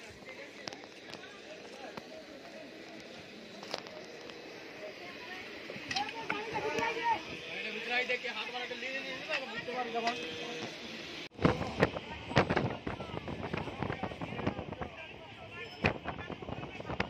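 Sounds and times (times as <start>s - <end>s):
overlapping voices of passengers: 0.0s - 17.0s.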